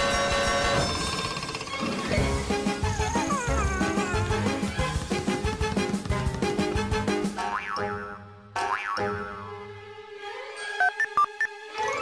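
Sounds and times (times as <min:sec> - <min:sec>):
bouncy cartoon music: 0:00.0 - 0:12.0.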